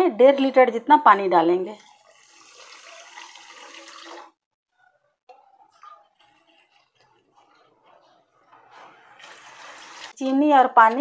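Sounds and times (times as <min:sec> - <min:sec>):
water pouring into metal pan: 0:01.8 - 0:04.4, 0:09.1 - 0:10.1.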